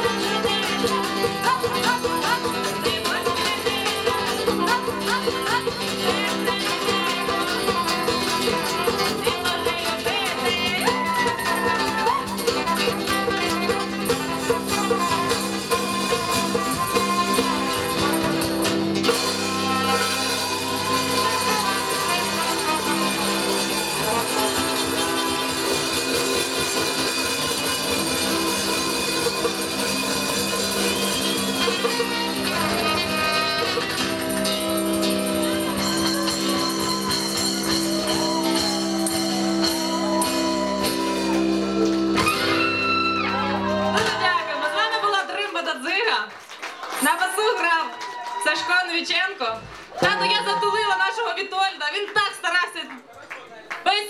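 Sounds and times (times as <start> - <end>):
woman singing: 0.0 - 26.8, 31.4 - 41.6
strummed acoustic guitar: 0.0 - 44.2
acoustic bass guitar: 0.0 - 44.3
hand percussion: 0.0 - 46.1.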